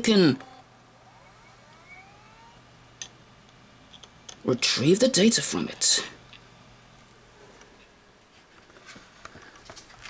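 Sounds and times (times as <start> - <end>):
hard drive spinning up whine: 0.0 - 3.8.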